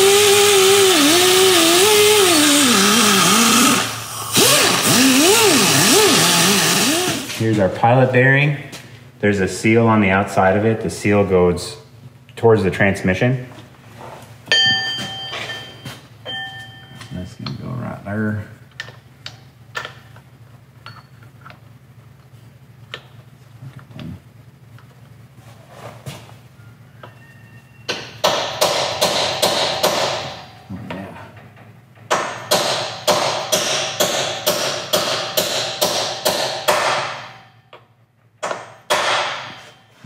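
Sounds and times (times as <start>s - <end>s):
heavy hammer strikes: 27.9s - 30.6s, 32.1s - 37.6s, 38.4s - 39.8s.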